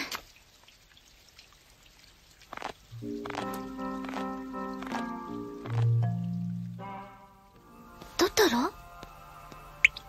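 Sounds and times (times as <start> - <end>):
faint steady rain: 0.0 - 10.0
water drips: 0.0 - 10.0.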